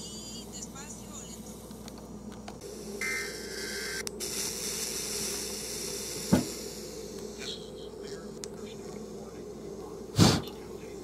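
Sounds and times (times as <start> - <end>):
radio hiss from loudspeaker: 0.0 - 2.0, 2.6 - 11.0
low hum: 0.0 - 11.0.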